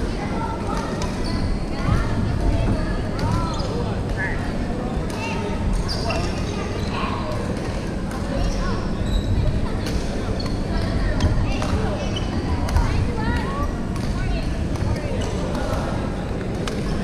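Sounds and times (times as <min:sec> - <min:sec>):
background voices chattering: 0:00.0 - 0:17.0
sneakers squeaking on wooden floor: 0:05.8 - 0:07.0.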